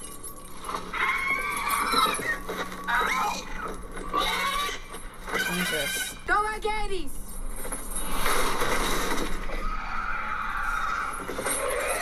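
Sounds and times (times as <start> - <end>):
dragon screeching cries: 0.9 - 6.1, 9.6 - 12.0.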